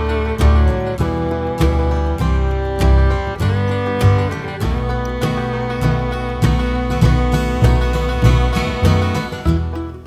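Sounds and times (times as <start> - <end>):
country acoustic guitar strumming: 0.0 - 10.0.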